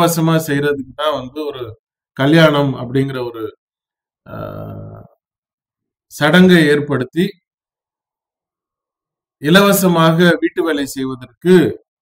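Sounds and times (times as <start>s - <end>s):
man saying aah: 4.3s - 5.1s.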